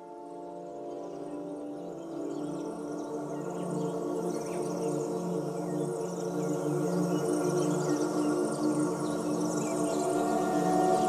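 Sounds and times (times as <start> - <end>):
ambient droning music: 0.0 - 11.0
shimmering high notes: 9.8 - 11.0.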